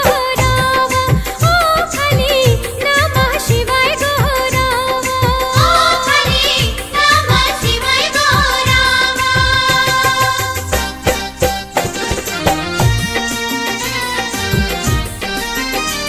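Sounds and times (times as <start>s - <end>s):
devotional song melody: 0.0s - 16.0s
steady drum beat: 0.0s - 16.0s.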